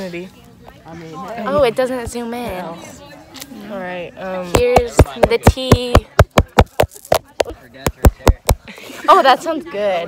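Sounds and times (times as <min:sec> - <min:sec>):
fingers tapping on phone: 0:04.6 - 0:08.6.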